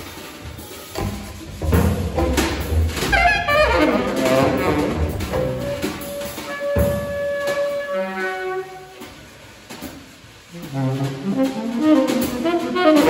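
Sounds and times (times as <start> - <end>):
drums: 0.0 - 13.0
sharp drum hit: 1.0 - 7.7
bowed cello: 1.0 - 8.8
tenor saxophone: 3.0 - 9.2, 10.5 - 13.0.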